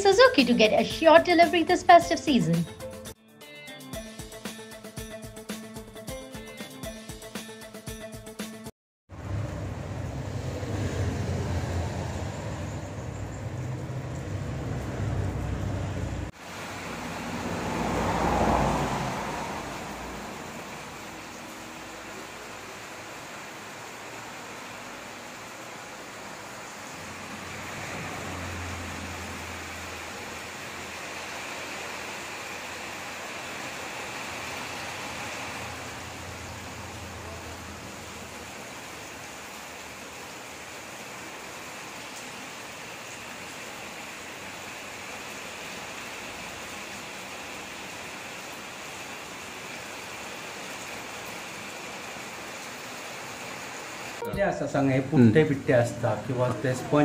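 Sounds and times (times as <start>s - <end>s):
low hum: 9.1s - 16.3s.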